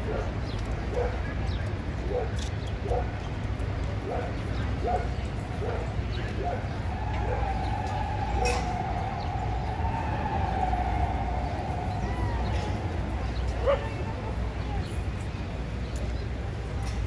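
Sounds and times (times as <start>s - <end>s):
city traffic rumble: 0.0s - 17.0s
steady high tone: 6.9s - 13.5s.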